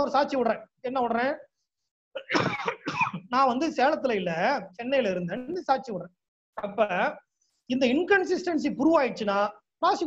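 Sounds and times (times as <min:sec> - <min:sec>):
man speaking: 0:00.0 - 0:01.6, 0:03.2 - 0:10.0
man coughing: 0:02.2 - 0:03.3.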